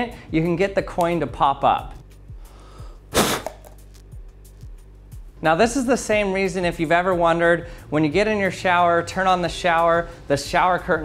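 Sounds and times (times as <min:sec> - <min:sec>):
quiet music with low beat: 0:00.0 - 0:11.0
hard puff of breath: 0:02.4 - 0:03.8.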